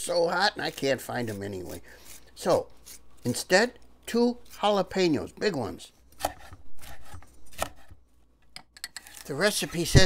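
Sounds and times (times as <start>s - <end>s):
knife slicing on wooden board: 6.1s - 8.0s.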